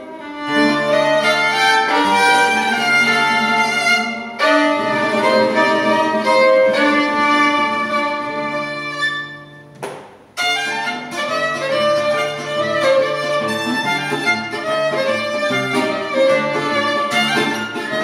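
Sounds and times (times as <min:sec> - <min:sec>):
violin playing: 0:00.0 - 0:09.8, 0:10.4 - 0:18.0
nylon-string guitar playing: 0:00.0 - 0:18.0.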